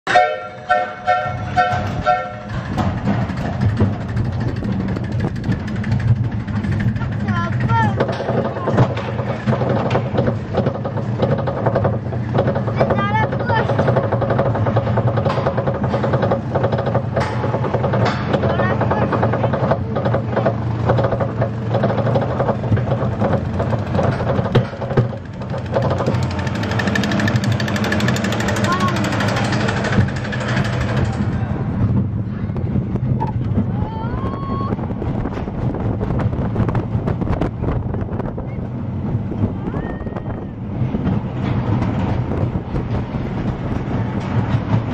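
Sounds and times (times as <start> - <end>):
low mechanical drone: 0.0 - 44.9
roller coaster rumbling and rattling: 0.0 - 44.9.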